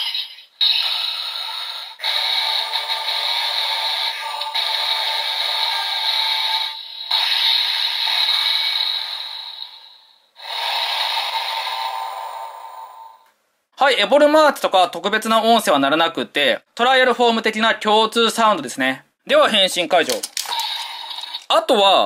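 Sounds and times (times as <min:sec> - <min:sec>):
toy electronic sound effects: 0:00.0 - 0:13.2, 0:20.0 - 0:21.6.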